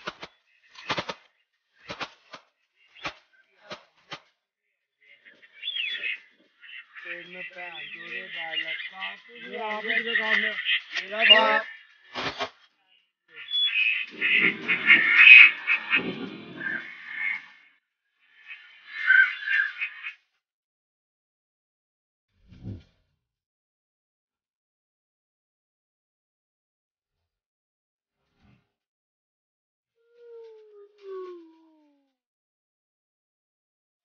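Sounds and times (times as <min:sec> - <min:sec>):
birds chirping: 0:00.0 - 0:20.2, 0:30.0 - 0:32.0
clear falling bird call: 0:05.0 - 0:12.6, 0:13.3 - 0:17.6
ducks quacking: 0:05.1 - 0:12.0, 0:13.4 - 0:17.5.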